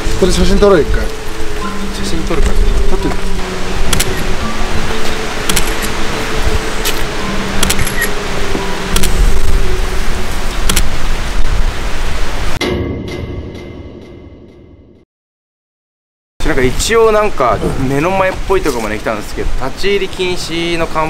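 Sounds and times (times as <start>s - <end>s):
static-like hiss: 0.0s - 12.6s
eerie background music: 0.0s - 15.0s
sharp clicks: 3.9s - 4.3s, 5.4s - 6.0s, 7.6s - 8.2s, 8.9s - 9.2s, 10.6s - 10.9s.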